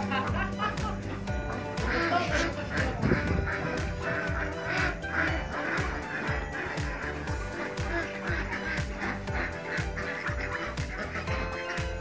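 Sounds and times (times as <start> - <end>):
ducks quacking: 0.0 - 12.0
music with a steady beat: 0.0 - 12.0.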